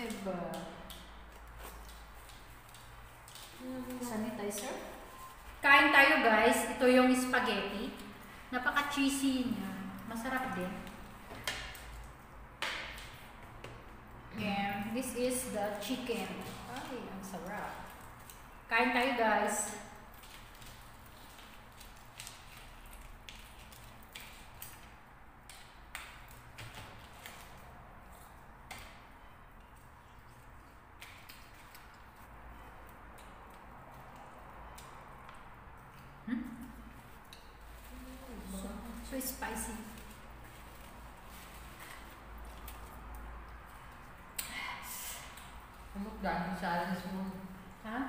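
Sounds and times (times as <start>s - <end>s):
small clicks and crackles: 0.0s - 5.5s, 15.6s - 36.1s
chewing fried chicken: 16.4s - 18.7s, 19.8s - 39.1s, 39.8s - 44.4s.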